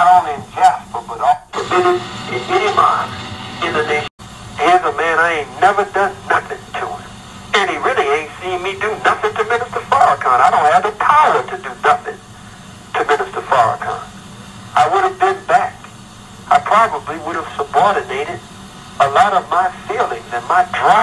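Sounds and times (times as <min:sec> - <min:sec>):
person talking: 0:00.0 - 0:12.2, 0:13.0 - 0:14.1, 0:14.8 - 0:15.9, 0:19.0 - 0:21.0.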